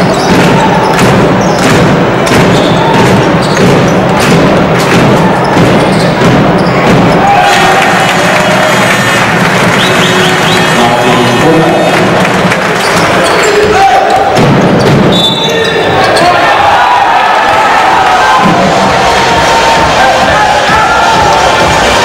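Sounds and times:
sneakers squeaking: 0:00.0 - 0:07.5, 0:12.8 - 0:16.8
basketball bouncing: 0:00.0 - 0:08.3, 0:12.3 - 0:16.8
crowd voices din: 0:00.0 - 0:22.0.

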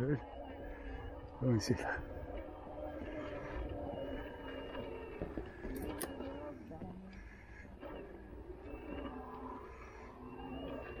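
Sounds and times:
electric bike motor humming: 0:00.0 - 0:11.0.

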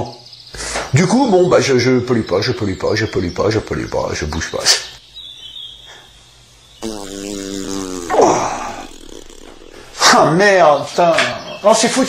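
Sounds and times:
long fart: 0:06.8 - 0:10.5.

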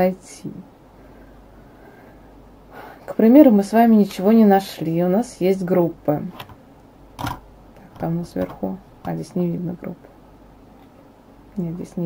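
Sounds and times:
faint room hiss: 0:00.0 - 0:12.0
woman breathing in: 0:01.0 - 0:03.1.

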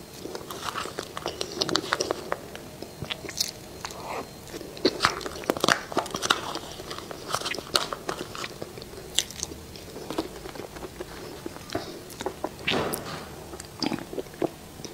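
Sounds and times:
person chewing crunchy food: 0:00.0 - 0:14.9.

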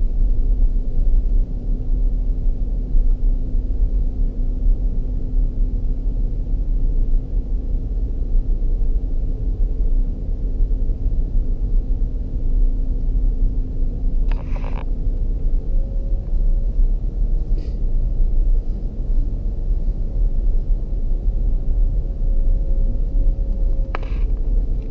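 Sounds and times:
faint steady drone: 0:00.0 - 0:24.9
car cabin rumble: 0:11.2 - 0:24.9.

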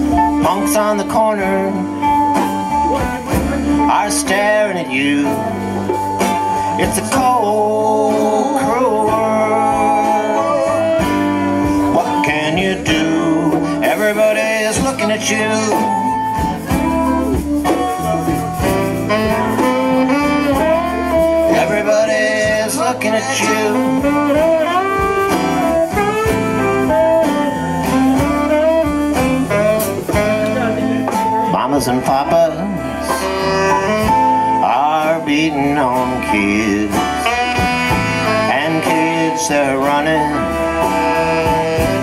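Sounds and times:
bass and drums groove: 0:00.0 - 0:42.0
live rock band playing: 0:00.0 - 0:42.0
saxophone: 0:00.0 - 0:42.0.

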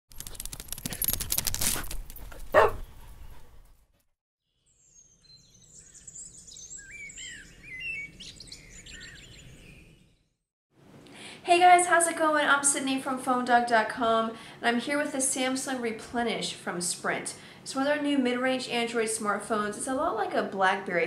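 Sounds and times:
birds chirping and twittering: 0:04.5 - 0:10.4.

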